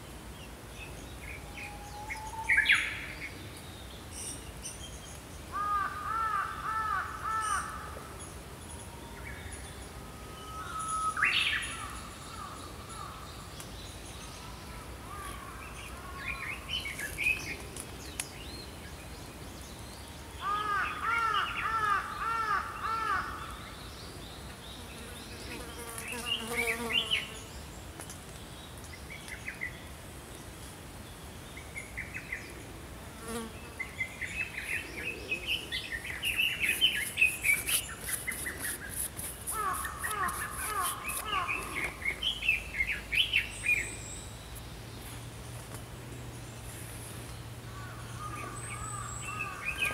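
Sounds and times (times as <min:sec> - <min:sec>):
faint steady high hiss: 0:00.0 - 0:49.9
songbirds singing: 0:00.0 - 0:49.9.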